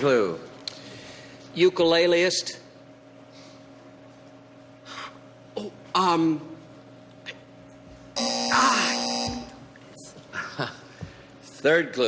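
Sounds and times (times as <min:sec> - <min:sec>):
game-show buzzer: 0:08.2 - 0:09.6.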